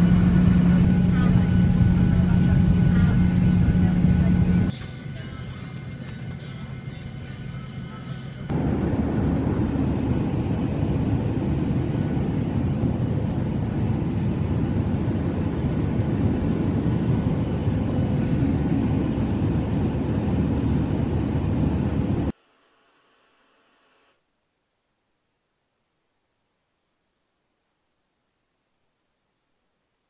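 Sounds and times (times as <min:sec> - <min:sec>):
airliner cabin engine rumble: 0:00.0 - 0:22.3.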